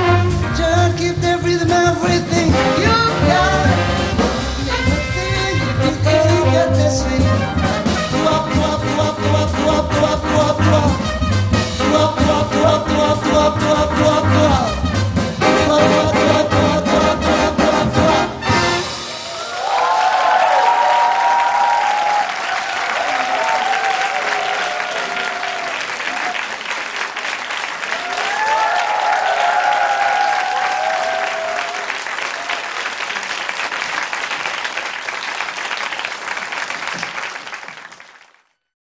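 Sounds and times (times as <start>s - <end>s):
audience applauding and cheering: 18.6s - 38.6s.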